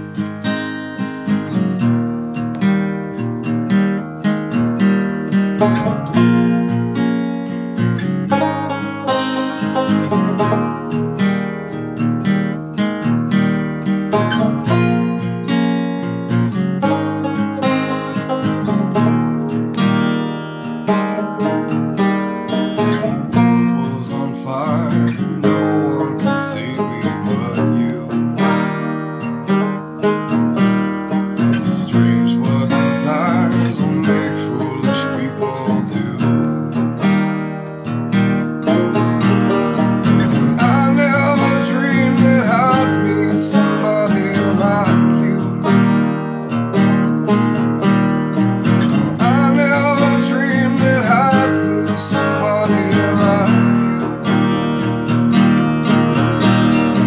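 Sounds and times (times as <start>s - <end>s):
acoustic guitar: 0.0s - 57.0s
banjo: 0.0s - 57.0s.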